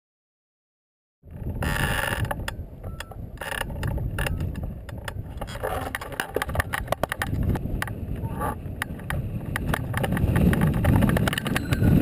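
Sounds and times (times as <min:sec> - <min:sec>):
wind buffeting microphone: 0:01.2 - 0:12.0
glider frame clicks and rattles: 0:01.7 - 0:12.0.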